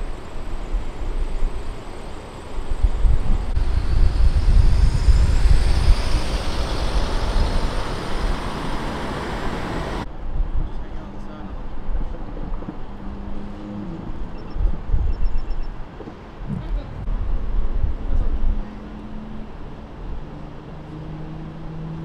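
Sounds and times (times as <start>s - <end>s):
traffic noise: 0.0s - 22.0s
vehicle driving past: 3.5s - 10.1s.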